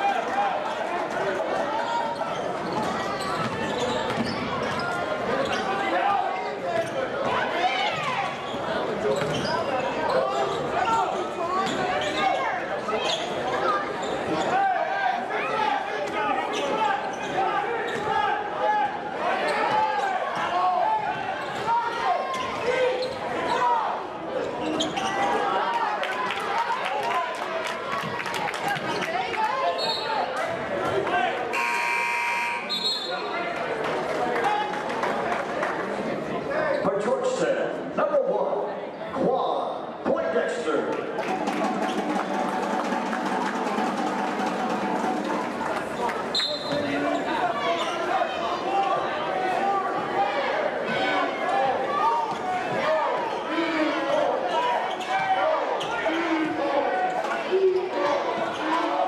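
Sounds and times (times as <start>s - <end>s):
crowd chatter: 0.0s - 59.0s
scoreboard buzzer: 31.5s - 32.8s.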